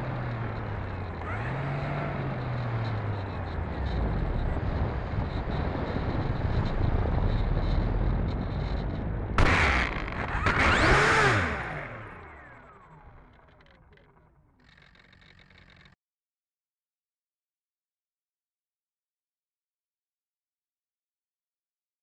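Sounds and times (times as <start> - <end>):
wheels bumping on asphalt: 0.0 - 16.0
model plane electric motor: 9.4 - 16.0.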